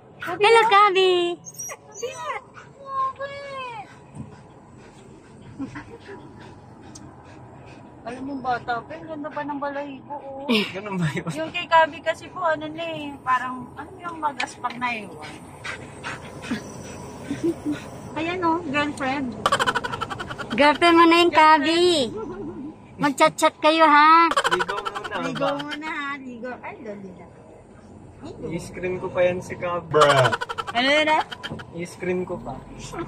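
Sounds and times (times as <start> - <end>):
dog whining and yowling: 1.4 - 2.7.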